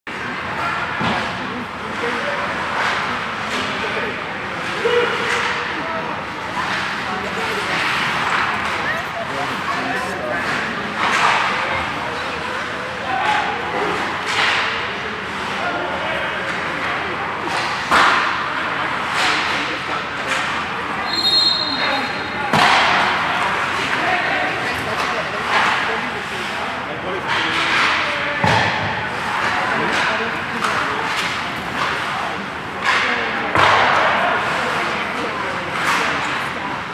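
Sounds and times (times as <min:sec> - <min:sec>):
pucks hitting boards: 0:00.1 - 0:15.8, 0:16.5 - 0:20.7, 0:22.0 - 0:26.6, 0:27.2 - 0:36.9
players' voices: 0:00.1 - 0:36.9
sticks striking pucks: 0:00.6 - 0:15.6, 0:16.5 - 0:20.7, 0:22.5 - 0:26.6, 0:27.2 - 0:36.9.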